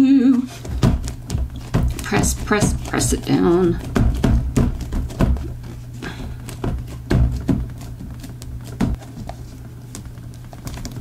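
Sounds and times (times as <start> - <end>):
low steady hum: 0.0 - 11.0
hands handling paper and board: 0.4 - 11.0.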